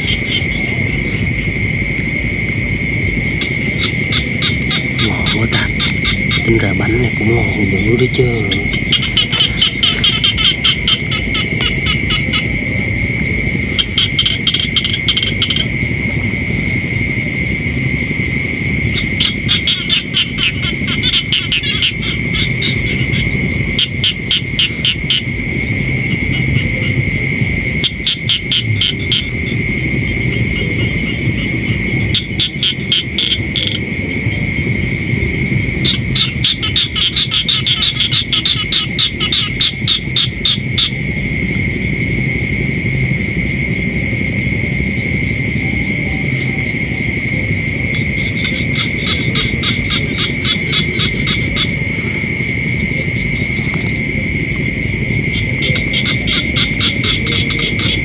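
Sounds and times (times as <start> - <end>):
frogs calling in pulsed trains: 0.0 - 58.0
high-pitched drone: 0.0 - 58.0
low rumble: 0.0 - 58.0.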